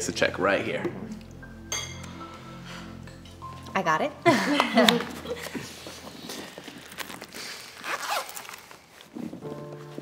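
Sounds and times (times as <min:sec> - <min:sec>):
soft background music: 0:00.0 - 0:07.3, 0:08.8 - 0:10.0
glass clink: 0:01.6 - 0:02.3.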